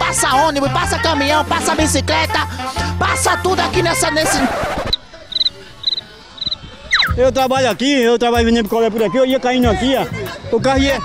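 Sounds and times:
cricket chirping: 4.9 - 7.2.

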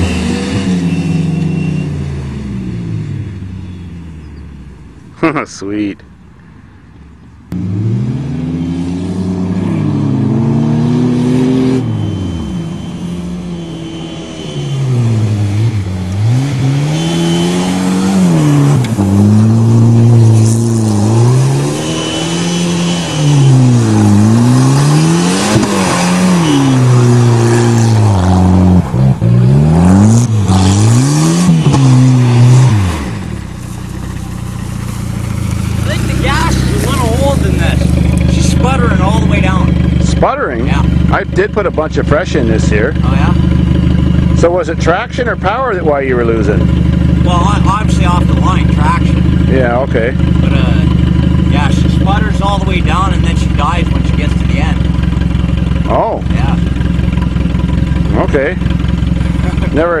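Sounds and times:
car engine revving and idling: 0.0 - 6.3, 7.4 - 60.0.

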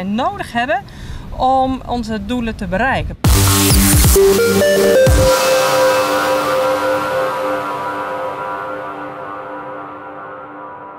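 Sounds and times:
held synthesizer chord: 3.3 - 10.9.

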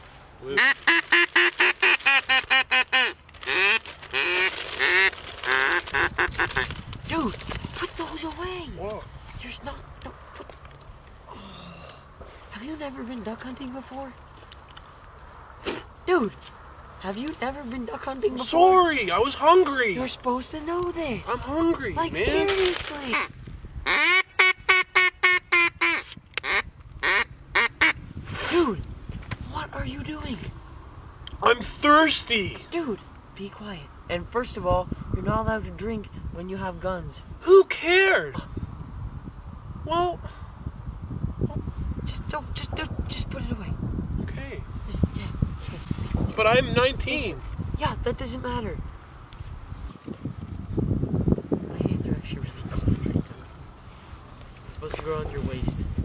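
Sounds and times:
duck call quacks: 0.6 - 6.7, 23.1 - 23.3, 23.9 - 28.0.

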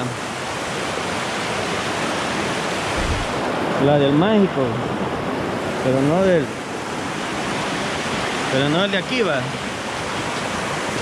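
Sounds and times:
water rushing over rocks: 0.0 - 11.0.

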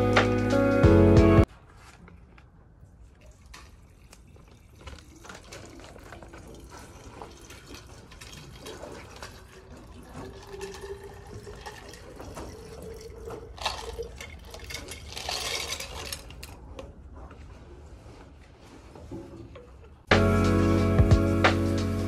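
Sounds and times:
liquid pouring: 3.1 - 16.6.

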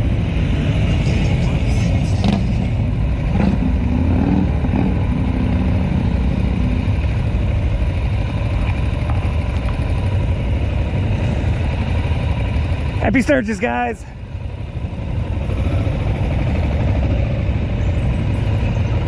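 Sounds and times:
motorcycle engines rumbling: 0.0 - 19.0.

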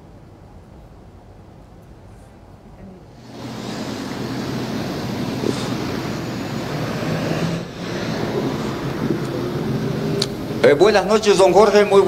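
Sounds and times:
vehicles passing on street: 3.2 - 12.0.

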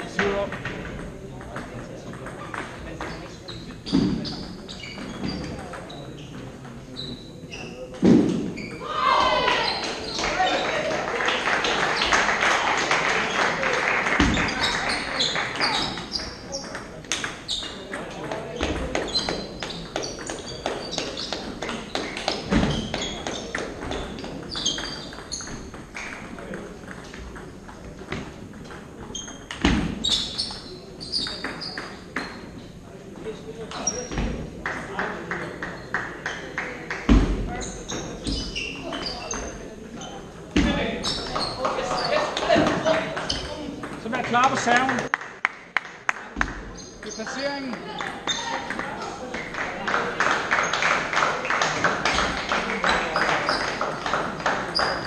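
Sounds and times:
voices talking: 0.0 - 45.1, 46.8 - 50.2
table tennis balls clicking: 14.1 - 32.3, 41.0 - 45.1, 46.4 - 49.6.

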